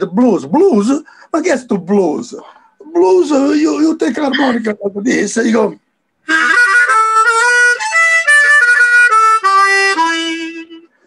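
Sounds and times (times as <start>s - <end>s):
harmonica playing: 6.2s - 11.0s.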